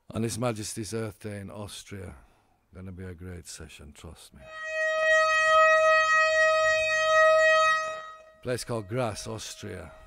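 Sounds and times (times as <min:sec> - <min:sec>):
steady horn-like tone: 0:04.4 - 0:10.0.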